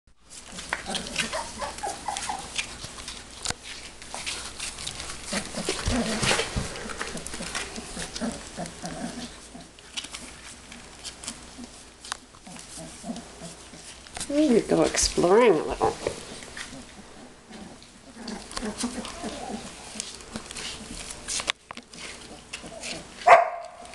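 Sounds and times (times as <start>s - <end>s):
puppies whimpering and grunting: 0.3s - 23.2s
paws scratching plastic tarp: 0.3s - 23.9s.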